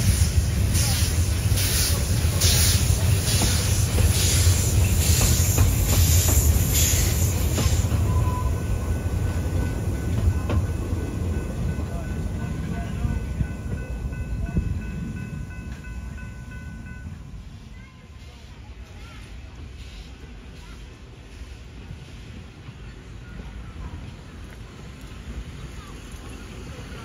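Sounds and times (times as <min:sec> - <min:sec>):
steam locomotive exhaust chuffing: 0:00.0 - 0:17.5
train rumble: 0:00.0 - 0:27.0.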